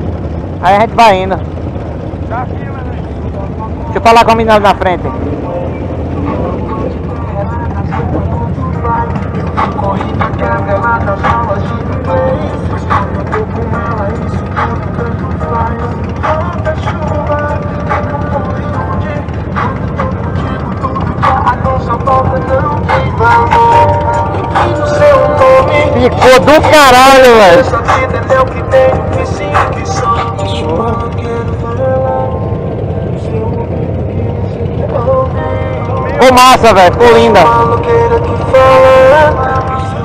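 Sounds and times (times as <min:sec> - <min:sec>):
motorcycle engines idling: 0:00.0 - 0:40.0
music playing: 0:02.6 - 0:40.0.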